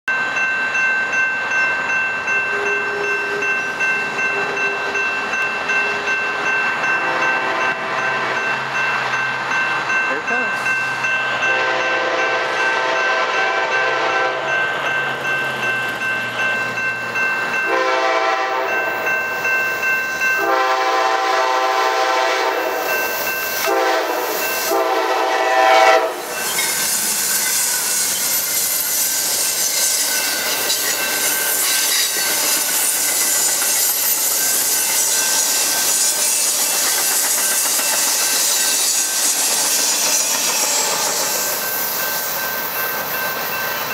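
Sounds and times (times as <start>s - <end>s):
crossing bell ringing: 0.1s - 43.9s
train cars rushing and clacking: 0.1s - 43.9s
locomotive air horn blasts: 7.0s - 8.5s, 11.5s - 14.5s, 17.7s - 18.8s, 20.4s - 22.9s, 23.6s - 26.3s.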